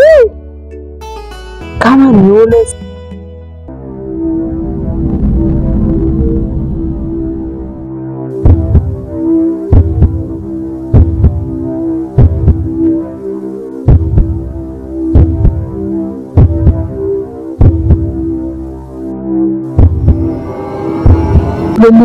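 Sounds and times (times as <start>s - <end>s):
low droning hum: 3.7s - 12.9s, 19.7s - 22.0s
heartbeat thumps: 8.4s - 9.1s, 9.7s - 12.8s, 13.9s - 14.5s, 15.1s - 15.8s, 16.4s - 17.0s, 17.6s - 18.2s, 19.7s - 21.8s.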